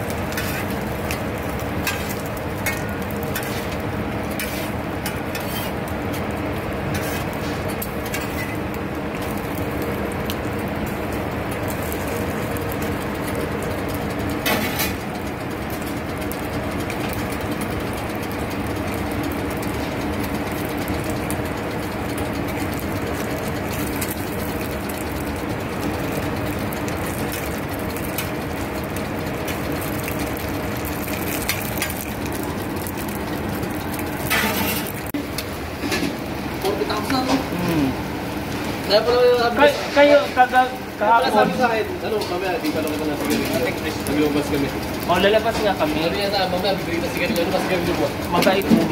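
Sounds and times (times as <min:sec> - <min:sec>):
steady mechanical hum: 0:00.0 - 0:48.9.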